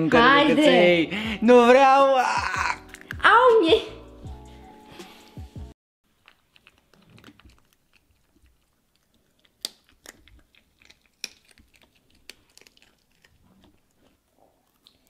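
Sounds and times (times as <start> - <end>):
puppy chewing a bone: 6.1 - 15.0
sharp cracks of bone: 9.4 - 13.3.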